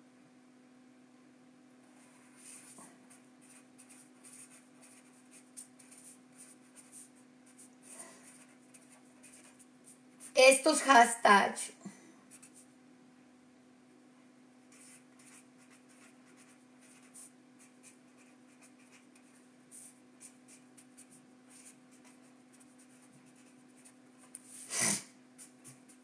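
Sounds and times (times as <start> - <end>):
pen scratching handwriting: 3.4 - 7.1, 8.3 - 9.7, 14.7 - 24.7.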